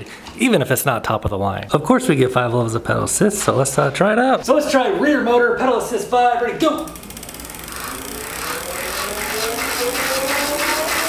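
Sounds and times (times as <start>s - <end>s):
electric motor whine: 6.9s - 11.0s.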